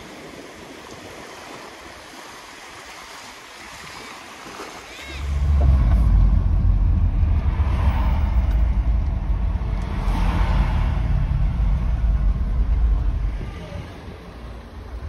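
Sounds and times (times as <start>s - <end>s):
car interior road and engine rumble: 5.2s - 15.0s.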